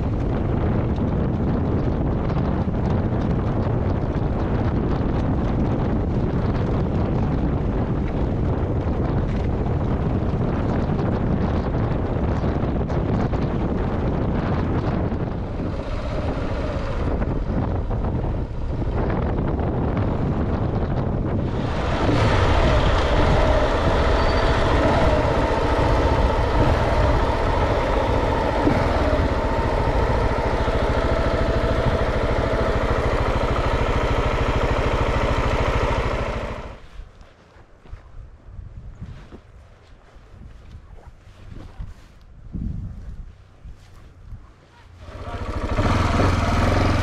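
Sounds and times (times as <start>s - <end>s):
motorcycle engine running: 0.0s - 36.8s, 43.8s - 47.0s
wind on microphone: 0.0s - 47.0s.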